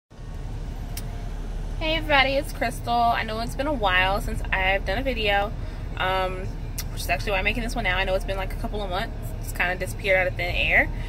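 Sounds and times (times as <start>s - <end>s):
car cabin rumble: 0.2s - 11.0s
woman speaking: 1.8s - 10.9s.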